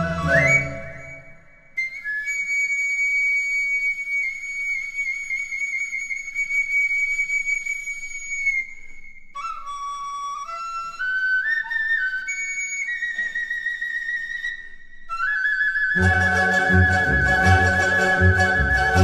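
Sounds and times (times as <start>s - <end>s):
bamboo flute solo: 0.0s - 19.0s.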